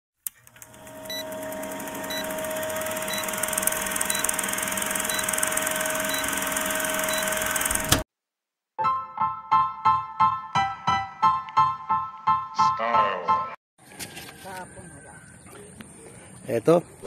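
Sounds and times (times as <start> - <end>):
film projector running: 0.2 - 8.0.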